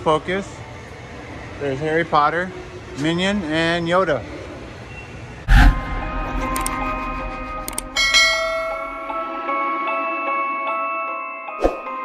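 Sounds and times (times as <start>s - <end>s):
bell and chime jingle: 6.4s - 12.0s
bright bell strike: 7.7s - 9.3s.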